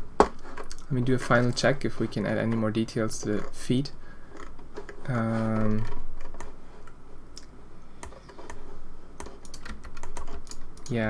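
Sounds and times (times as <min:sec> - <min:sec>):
keyboard keys clicking: 0:09.2 - 0:11.0.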